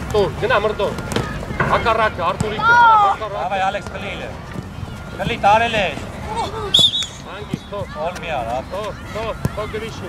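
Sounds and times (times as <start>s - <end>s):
voices shouting outdoors: 0.0s - 10.0s.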